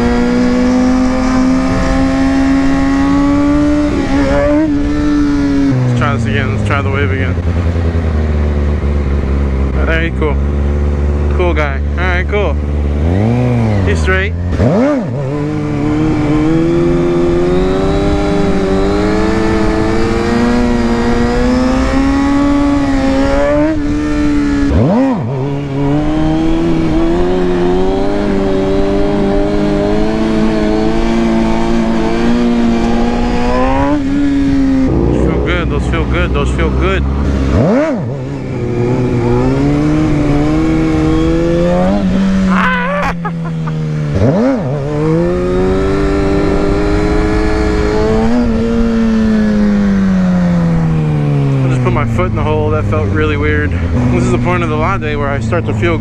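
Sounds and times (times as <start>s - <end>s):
motorcycle engine at high revs: 0.0s - 56.0s.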